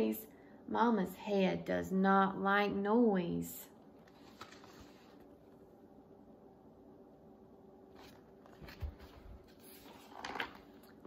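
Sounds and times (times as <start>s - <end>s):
book rustling: 4.0s - 5.6s, 7.9s - 11.0s.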